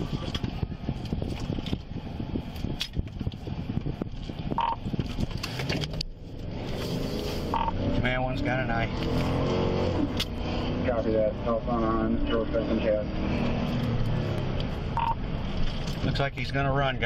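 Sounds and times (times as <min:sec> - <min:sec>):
car cabin rumble: 0:00.0 - 0:08.9.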